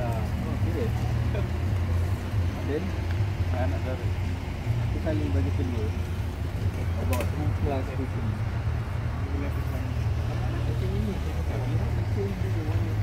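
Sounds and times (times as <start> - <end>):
steady low rumble: 0.0 - 13.0.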